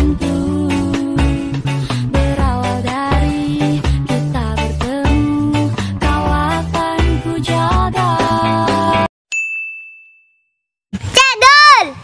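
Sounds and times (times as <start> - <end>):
background music: 0.0 - 9.1
bright ding: 9.3 - 10.6
high-pitched voice calling out: 11.1 - 12.0.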